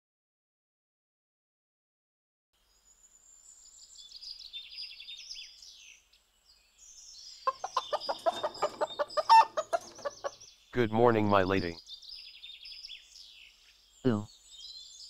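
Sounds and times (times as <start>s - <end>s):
small birds chirping: 2.6s - 15.0s
hens clucking: 7.5s - 10.4s.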